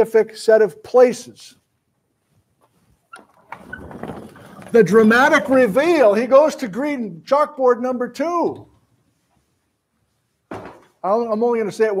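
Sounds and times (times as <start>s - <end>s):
casters rolling on carpet: 2.2s - 6.0s.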